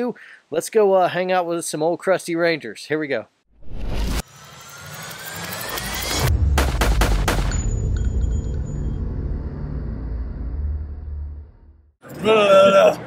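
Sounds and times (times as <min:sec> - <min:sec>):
rising whoosh: 0:03.5 - 0:11.8
sharp gunshot-like hits: 0:06.2 - 0:07.8
deep rumbling boom: 0:06.2 - 0:11.9.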